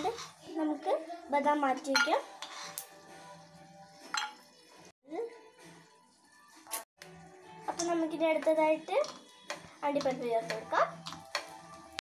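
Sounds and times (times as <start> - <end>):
steel spoon clinking on pan: 4.2 - 4.4.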